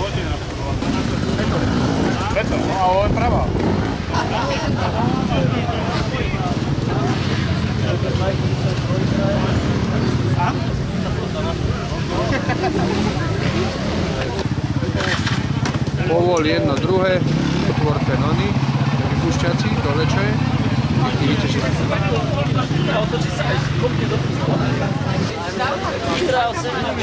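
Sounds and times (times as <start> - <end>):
people talking: 0.0 - 27.0.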